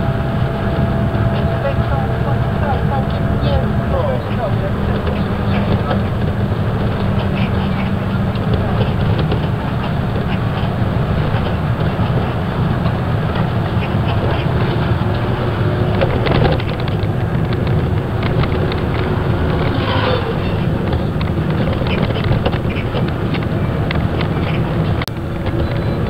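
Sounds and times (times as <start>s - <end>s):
bus engine and road rumble: 0.0s - 26.0s
rattles and clicks: 0.0s - 26.0s.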